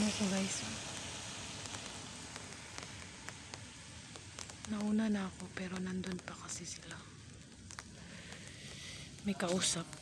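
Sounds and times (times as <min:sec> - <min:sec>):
light rain hiss: 0:00.0 - 0:10.0
raindrops ticking on umbrella: 0:00.0 - 0:10.0.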